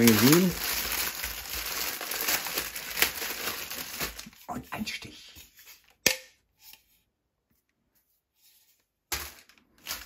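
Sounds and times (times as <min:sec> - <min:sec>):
cellophane rustling: 0:00.0 - 0:05.0, 0:09.1 - 0:10.0
faint handling sounds: 0:03.9 - 0:10.0.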